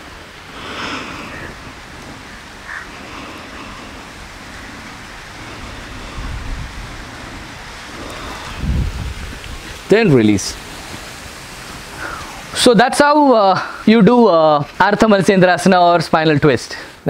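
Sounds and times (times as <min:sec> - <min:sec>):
wind on microphone: 0:00.0 - 0:12.6
low buffeting rumbles: 0:00.0 - 0:15.7.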